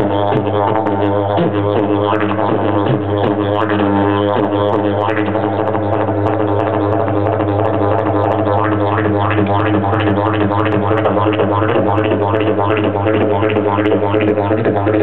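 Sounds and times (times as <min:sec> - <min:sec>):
didgeridoo drone: 0:00.0 - 0:15.0.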